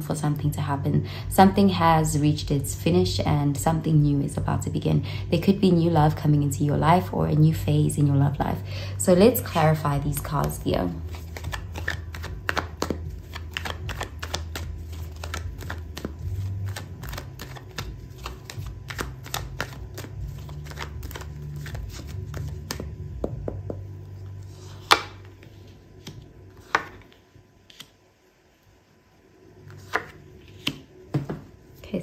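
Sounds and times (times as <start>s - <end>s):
cards being shuffled: 10.2s - 23.0s, 23.7s - 28.0s, 29.7s - 31.4s.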